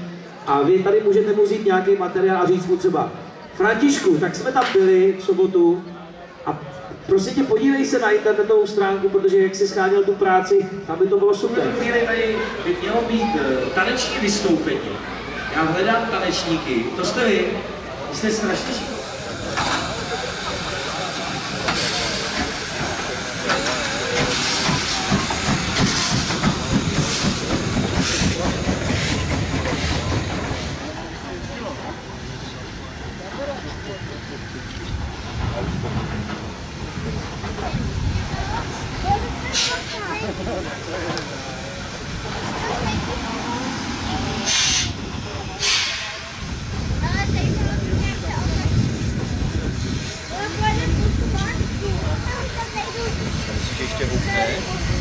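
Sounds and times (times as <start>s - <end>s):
steam locomotive chuffing: 11.7s - 55.0s
steam hissing: 15.8s - 55.0s.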